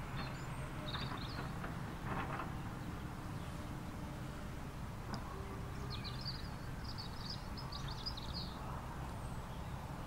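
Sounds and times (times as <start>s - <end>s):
birds chirping: 0.0s - 1.9s, 5.1s - 10.0s.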